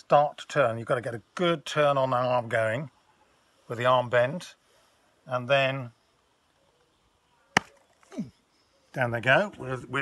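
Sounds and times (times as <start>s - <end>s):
sharp smack: 7.6s - 7.8s.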